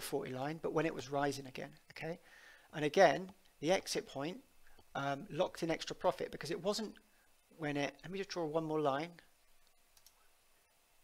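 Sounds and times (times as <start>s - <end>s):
faint mouse clicks: 9.6s - 10.2s.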